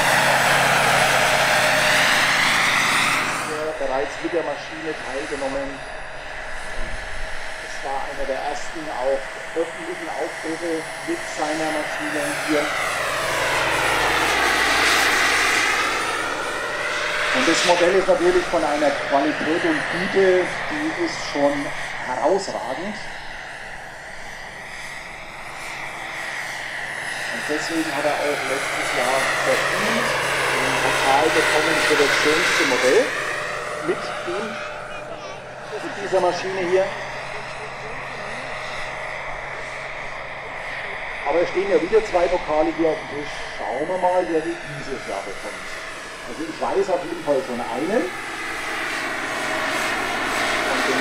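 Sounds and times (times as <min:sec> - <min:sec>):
model helicopter turbine whine: 0:00.0 - 0:51.0.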